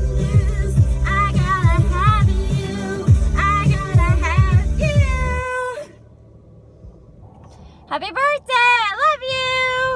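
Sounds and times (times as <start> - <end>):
pop music: 0.0 - 6.0.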